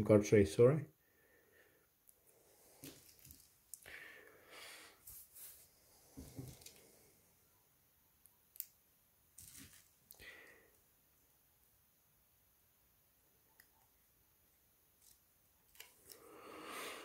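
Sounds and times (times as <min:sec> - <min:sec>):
small plastic clicks and rustles: 0:02.8 - 0:03.9, 0:06.2 - 0:06.9, 0:15.0 - 0:16.2.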